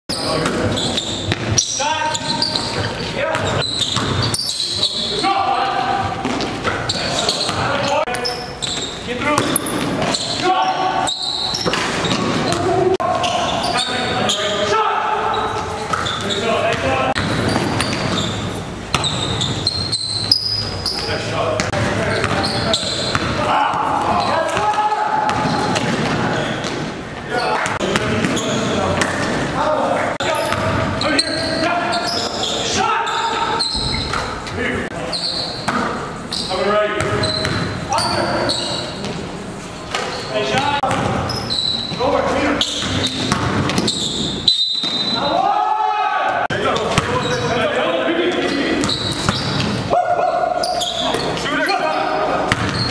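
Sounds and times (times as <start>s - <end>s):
players shouting and chattering: 0.1s - 52.9s
basketball bouncing on gym floor: 0.4s - 4.5s, 15.9s - 20.4s, 21.6s - 26.9s, 27.6s - 29.4s, 30.4s - 31.0s, 37.0s - 38.2s, 40.5s - 42.0s, 42.7s - 44.0s, 46.7s - 47.4s, 48.8s - 49.8s, 52.5s - 52.9s.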